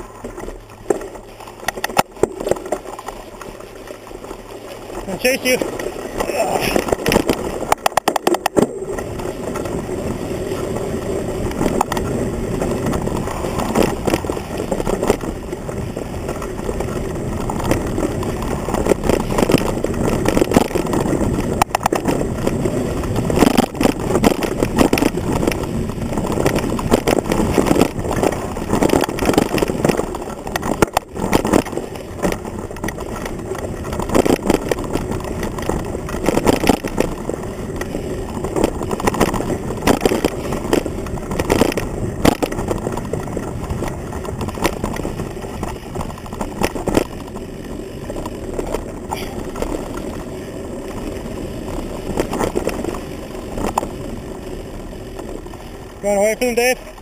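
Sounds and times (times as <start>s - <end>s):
mountain bike rattling on trail: 0.0s - 57.0s.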